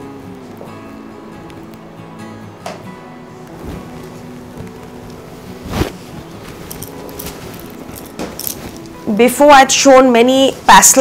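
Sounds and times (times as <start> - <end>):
faint background music: 0.0 - 11.0
fabric rustling: 3.4 - 9.4.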